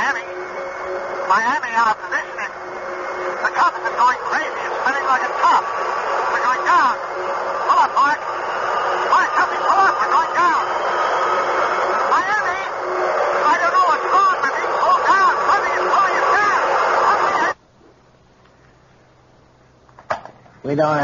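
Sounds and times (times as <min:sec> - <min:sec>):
radio static: 0:00.0 - 0:18.0
steady whine: 0:00.0 - 0:21.0.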